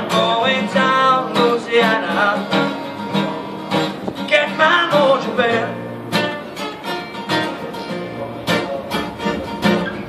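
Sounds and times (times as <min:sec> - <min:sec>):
acoustic guitars strumming blues: 0:00.0 - 0:10.0.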